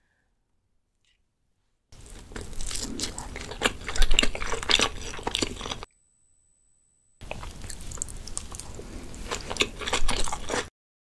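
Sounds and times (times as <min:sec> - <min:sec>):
close chewing mouth sounds: 0:02.0 - 0:05.9, 0:07.2 - 0:10.7.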